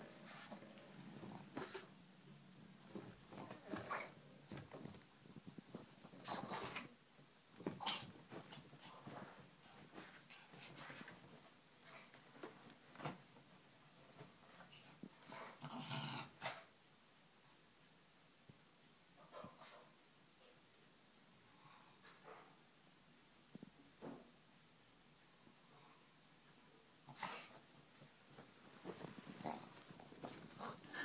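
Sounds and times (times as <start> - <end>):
bedding rustling: 0.0 - 6.9, 7.5 - 15.2, 27.5 - 31.0.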